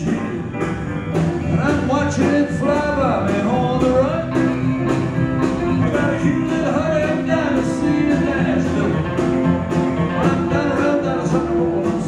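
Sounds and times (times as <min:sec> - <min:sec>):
country rock band playing: 0:00.0 - 0:12.0
lead guitar bending notes: 0:00.0 - 0:12.0.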